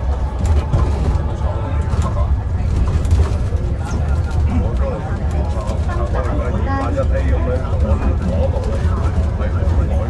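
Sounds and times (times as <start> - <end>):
bus interior low rumble: 0.0 - 10.0
passengers talking: 0.0 - 10.0.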